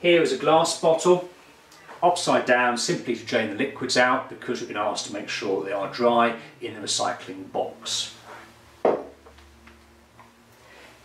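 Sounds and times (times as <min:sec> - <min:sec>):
glass bottle knocking on worktop: 0:08.8 - 0:09.2.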